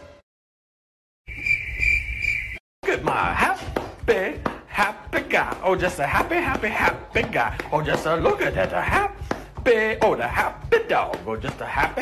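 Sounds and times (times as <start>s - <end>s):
person talking: 2.8s - 12.0s.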